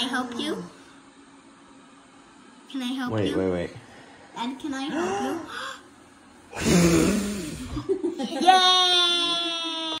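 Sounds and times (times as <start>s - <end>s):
child crying high-pitched: 8.4s - 10.0s.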